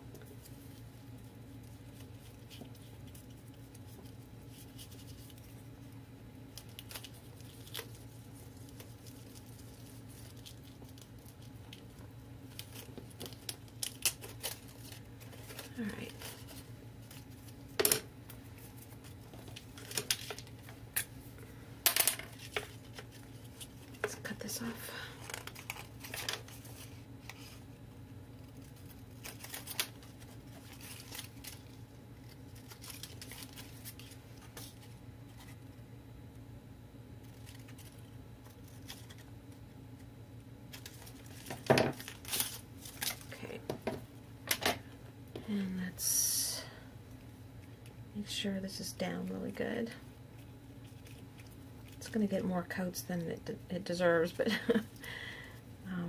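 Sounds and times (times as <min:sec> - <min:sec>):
steady low hum: 0:00.0 - 0:56.0
paper rustling: 0:01.6 - 0:05.6, 0:12.5 - 0:17.6, 0:25.2 - 0:27.6, 0:28.4 - 0:35.6.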